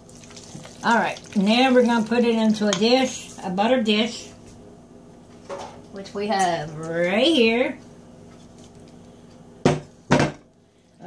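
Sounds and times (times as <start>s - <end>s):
knocks on a steel mixing bowl: 9.7s - 10.4s.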